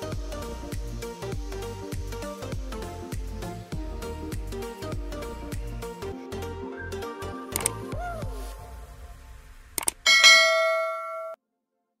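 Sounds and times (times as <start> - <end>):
bell-like chime ringing: 10.1 - 11.4.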